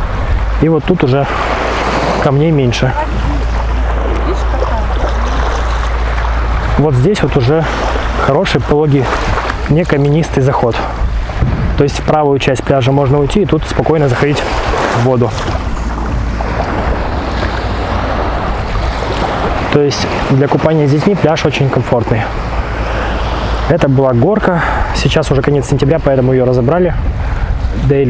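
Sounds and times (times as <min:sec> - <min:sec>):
small waves washing onto sand: 0:00.0 - 0:28.0
wind rumble on microphone: 0:00.0 - 0:28.0.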